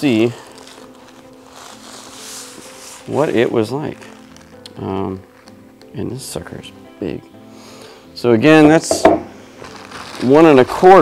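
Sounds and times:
plastic sleeve crinkling: 0.0s - 6.8s, 8.6s - 11.0s
soft music of held notes: 0.0s - 11.0s.

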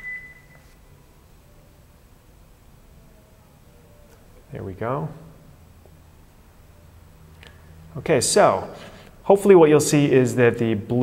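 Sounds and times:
high beep-like tone: 0.0s - 0.6s
faint room noise: 0.0s - 11.0s.

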